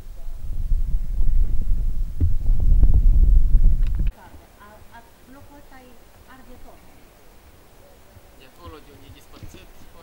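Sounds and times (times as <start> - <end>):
wind buffeting microphone: 0.0 - 4.4.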